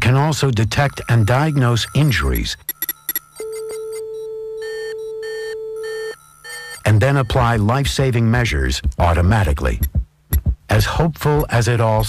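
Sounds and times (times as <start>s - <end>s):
short electronic beeps: 4.6s - 7.6s.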